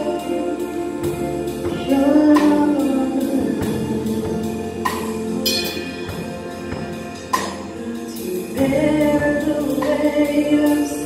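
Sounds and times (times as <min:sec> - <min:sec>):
drum and cymbal hits: 0:00.0 - 0:10.8
woman singing: 0:00.0 - 0:11.0.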